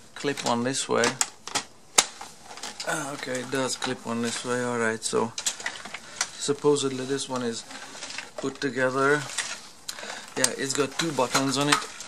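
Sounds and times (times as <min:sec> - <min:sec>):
plastic parts clicking: 0:00.2 - 0:04.6, 0:05.3 - 0:06.5, 0:07.2 - 0:12.0.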